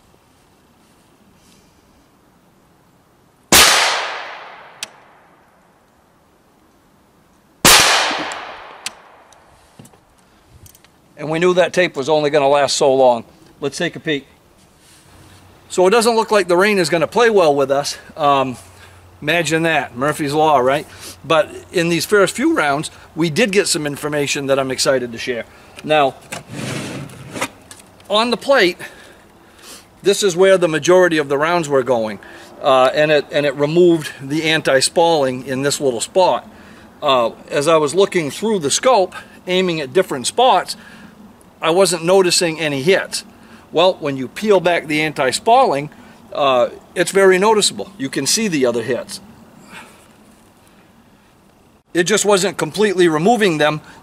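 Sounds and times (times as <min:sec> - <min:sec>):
suppressed rifle shots with echo: 0:03.5 - 0:05.4, 0:07.6 - 0:09.3
armor plate rustling and scraping: 0:26.2 - 0:28.0.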